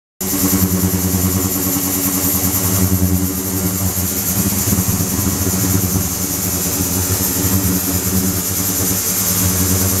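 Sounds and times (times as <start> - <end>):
ultrasonic cleaning tank buzzing hum: 0.2 - 10.0.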